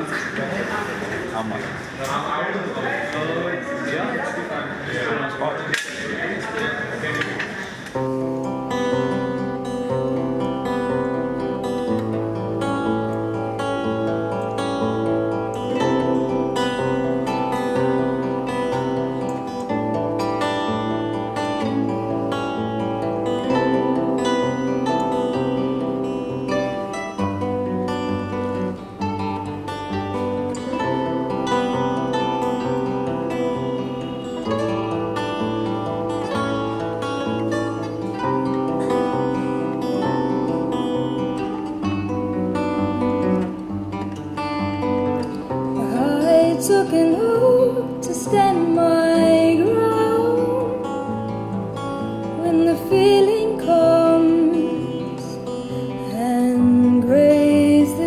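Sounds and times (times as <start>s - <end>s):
acoustic guitars playing: 0.0s - 58.0s.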